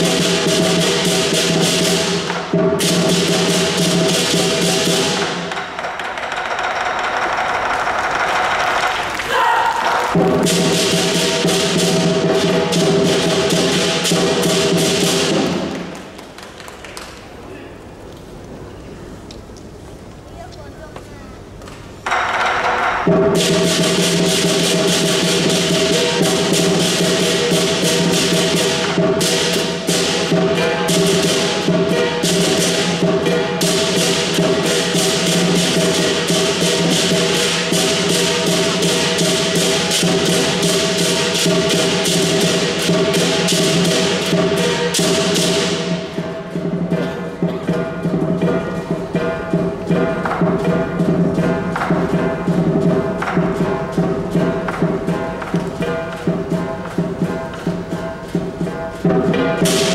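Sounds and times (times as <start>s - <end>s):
drum cymbals and gong band: 0.0s - 8.7s, 9.4s - 16.0s, 22.0s - 59.9s
cymbal clashes: 23.0s - 59.9s.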